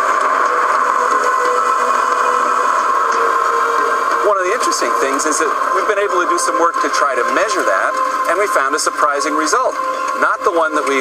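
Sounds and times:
car driving on gravel road: 0:00.0 - 0:11.0
man's voice: 0:04.2 - 0:11.0.

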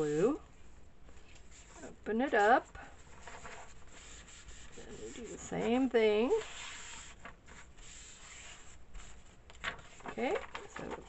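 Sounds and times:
paper towel rubbing on paper: 0:01.5 - 0:10.2.

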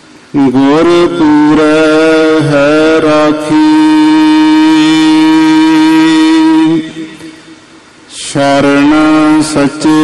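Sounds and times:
person chanting a long note: 0:00.4 - 0:07.4, 0:08.2 - 0:10.0.

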